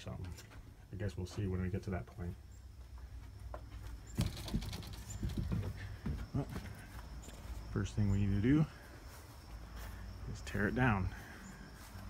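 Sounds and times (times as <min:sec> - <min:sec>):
footsteps on grass: 0:00.4 - 0:12.0.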